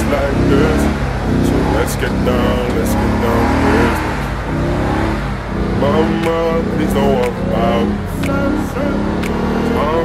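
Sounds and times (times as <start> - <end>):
car engine revving hard: 0.0 - 10.0.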